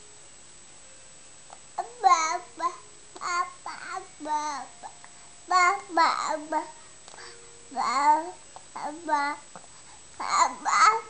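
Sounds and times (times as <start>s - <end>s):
baby babbling: 1.8s - 9.5s, 10.2s - 11.0s.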